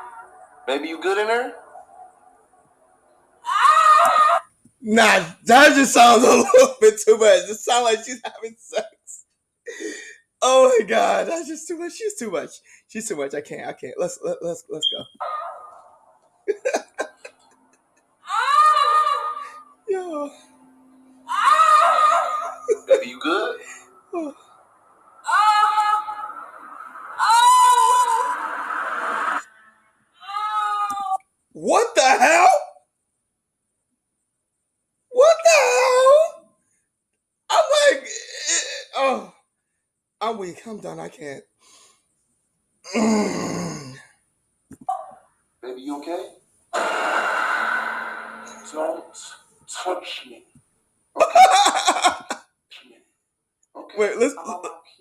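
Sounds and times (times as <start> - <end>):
woman's high-pitched moan-scream: 3.4 - 4.4, 18.3 - 19.6, 21.3 - 22.6, 25.3 - 26.4, 27.1 - 29.4, 30.2 - 31.2
person groaning: 9.7 - 10.1, 42.9 - 44.0
snickers: 16.5 - 17.3.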